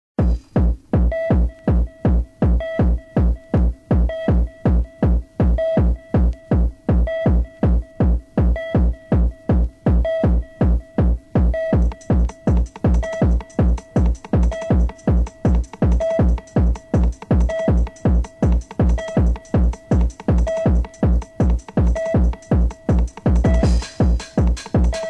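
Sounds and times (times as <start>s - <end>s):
drum-machine kick: 0.2s - 25.0s
electronic dance music: 0.2s - 25.0s.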